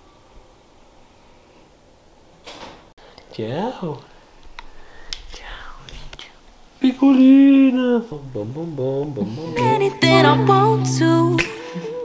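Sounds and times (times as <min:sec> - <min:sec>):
person whispering: 0:05.3 - 0:06.4.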